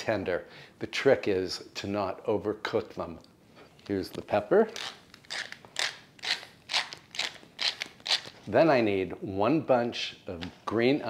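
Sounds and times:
pepper mill grinding: 4.7s - 8.5s.

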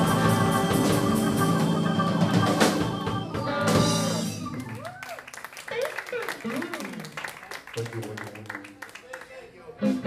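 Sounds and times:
keyboards: 0.0s - 4.8s
bass guitar: 0.0s - 4.9s
electric guitars: 0.0s - 4.9s
drum kit: 0.0s - 5.0s, 9.8s - 10.0s.

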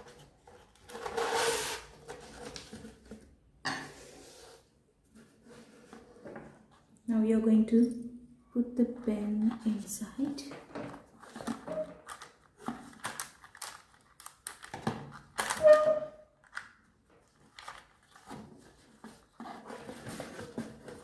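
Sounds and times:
hands handling cardboard box and cup: 0.0s - 6.9s, 10.6s - 13.7s, 17.2s - 21.0s.

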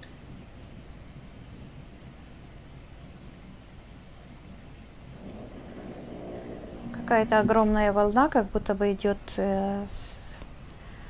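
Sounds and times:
background hiss and hum: 0.0s - 11.0s
person speaking: 6.8s - 9.2s.

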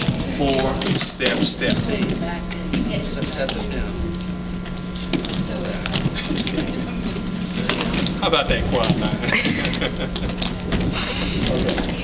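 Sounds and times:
electrical hum: 0.0s - 12.0s
low voices: 0.2s - 12.0s.

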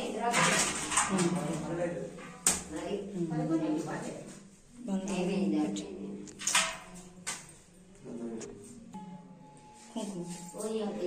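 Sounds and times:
people talking: 0.0s - 6.3s, 9.9s - 11.0s.

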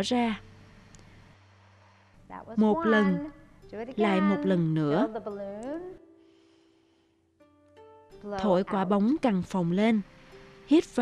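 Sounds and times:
faint instrumental music: 0.0s - 11.0s.

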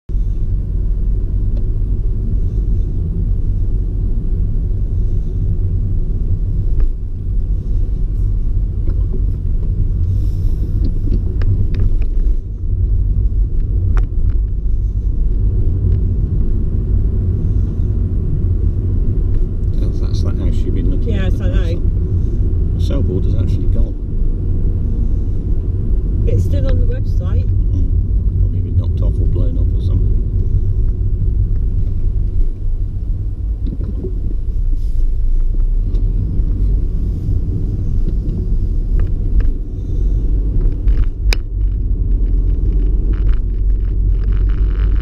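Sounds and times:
car engine and tyre rumble: 0.0s - 45.0s.

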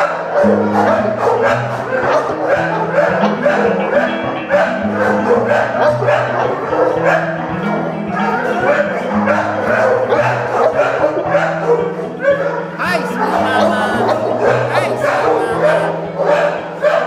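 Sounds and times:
dogs barking and yipping: 0.0s - 17.0s
music with steady bass line: 0.5s - 16.8s.

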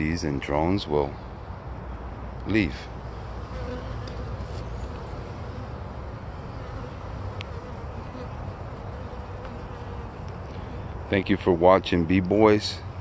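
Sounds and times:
bees buzzing: 3.1s - 11.0s.

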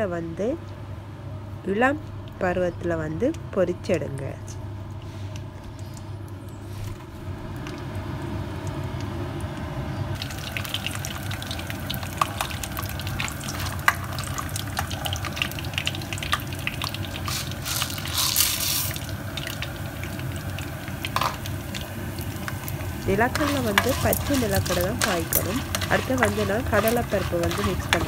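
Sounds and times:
peanuts sizzling in hot oil: 10.2s - 28.0s.

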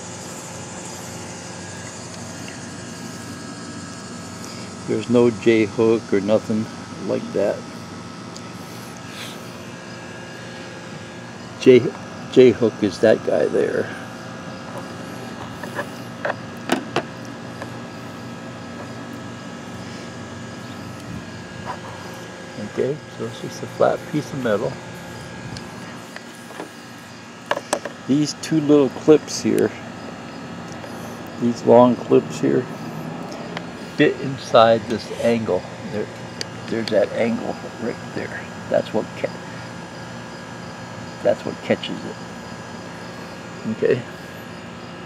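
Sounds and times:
background hum and hiss: 0.0s - 45.0s
man speaking: 22.6s - 24.8s, 28.1s - 29.9s, 31.4s - 32.7s, 33.9s - 39.4s, 43.6s - 44.1s.

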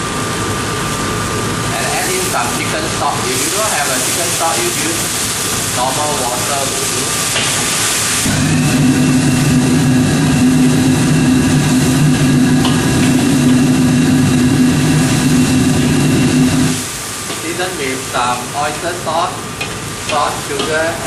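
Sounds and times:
stock boiling in a wok: 0.0s - 21.0s
burner roar: 2.1s - 18.8s
low motor hum: 8.2s - 16.9s.

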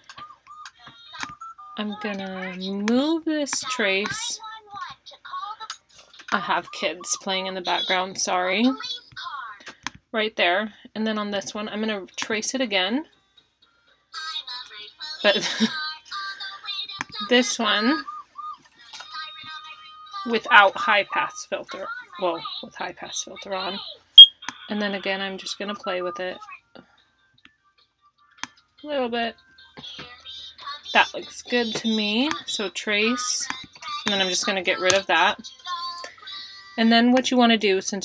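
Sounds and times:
woman speaking: 0.9s - 4.4s, 6.3s - 9.6s, 10.2s - 13.1s, 15.1s - 16.0s, 17.0s - 18.1s, 19.1s - 24.0s, 24.6s - 26.6s, 28.8s - 36.1s, 36.8s - 38.0s.

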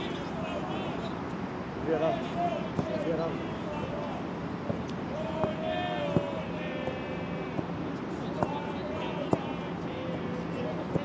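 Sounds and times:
players and supporters shouting: 0.0s - 1.2s, 1.9s - 11.0s
ball kicks: 2.7s - 3.1s, 4.6s - 10.3s.

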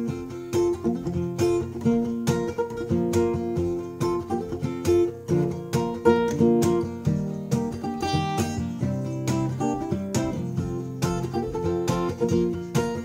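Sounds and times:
acoustic guitar strumming: 0.0s - 13.0s.

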